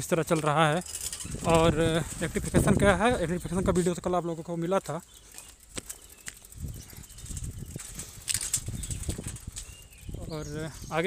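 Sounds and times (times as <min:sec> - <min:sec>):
bicycle rattling over rough ground: 0:00.0 - 0:11.0.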